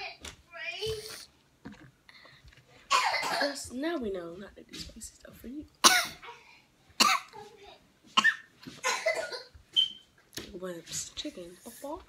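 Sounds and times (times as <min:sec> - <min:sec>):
person coughing: 0:02.9 - 0:03.6, 0:05.8 - 0:07.3, 0:08.2 - 0:09.5.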